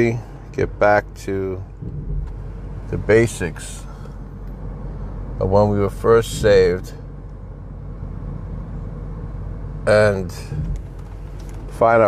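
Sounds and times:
car interior rumble: 0.0s - 12.0s
faint engine hum: 0.0s - 12.0s.

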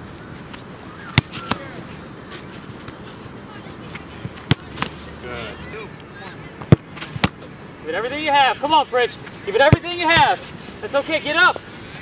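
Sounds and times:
soccer ball thuds: 0.5s - 1.8s, 4.2s - 5.0s, 9.5s - 10.4s
faint voices: 0.9s - 12.0s.

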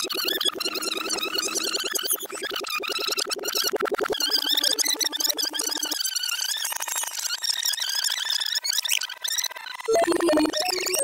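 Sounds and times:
reversed high-pitched squeaky chatter: 0.0s - 11.0s.

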